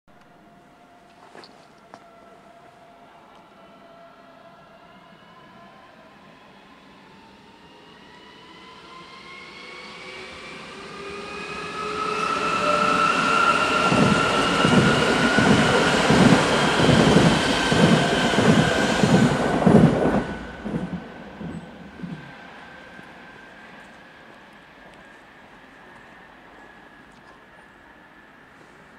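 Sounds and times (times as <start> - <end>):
electric train traction whine: 1.9 - 28.6.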